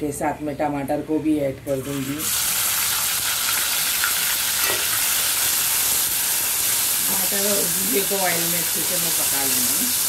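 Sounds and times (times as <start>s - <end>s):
food sizzling in hot oil: 1.8s - 10.0s.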